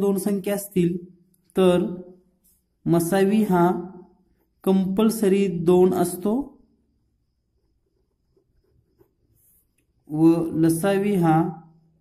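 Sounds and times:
pen writing on paper: 7.6 - 9.8.

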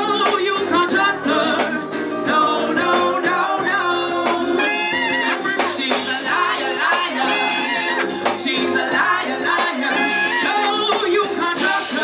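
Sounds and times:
drums: 0.0 - 12.0
keyboard: 0.0 - 12.0
woman singing: 0.0 - 12.0
saxophone: 3.5 - 8.8, 9.8 - 11.0
trumpet: 4.4 - 8.7, 9.8 - 12.0.

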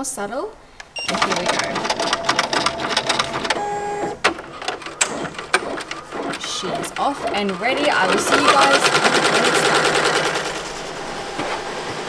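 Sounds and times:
embroidery machine ticking: 0.9 - 11.5.

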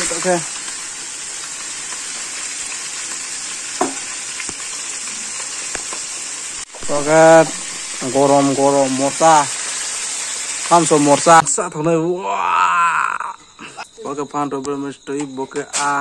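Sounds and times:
food sizzling in oil: 0.0 - 14.0
person speaking: 6.8 - 9.5.

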